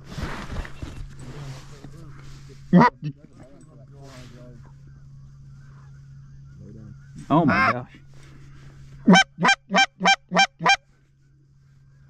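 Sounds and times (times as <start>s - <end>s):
goose honking: 2.7s - 3.2s, 7.4s - 7.8s, 9.0s - 10.8s.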